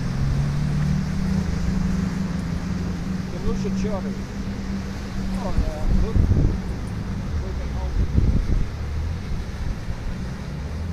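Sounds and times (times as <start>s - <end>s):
boat engines droning: 0.0s - 10.9s
heavy surf breaking: 0.0s - 10.9s.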